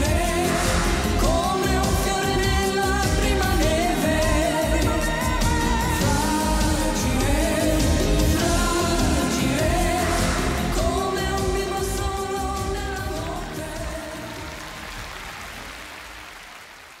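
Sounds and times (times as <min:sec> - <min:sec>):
pop ballad duet singing: 0:00.0 - 0:14.9
band playing: 0:00.0 - 0:16.3.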